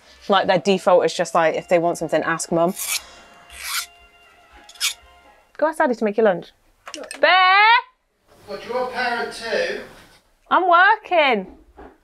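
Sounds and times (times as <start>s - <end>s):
faint background music: 0.0s - 11.8s
hand file rasping across metal: 2.6s - 3.9s, 4.7s - 5.0s.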